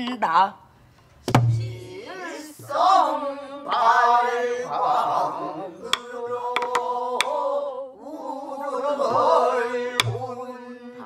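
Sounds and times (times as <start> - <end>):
group singing long wavering notes: 1.5 - 11.0
stick clicks on drum: 5.9 - 7.4, 10.0 - 10.2.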